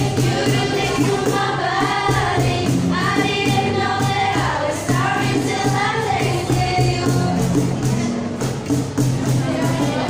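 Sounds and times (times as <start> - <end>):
girls singing into microphones: 0.0 - 8.0
strummed acoustic guitars: 0.0 - 10.0.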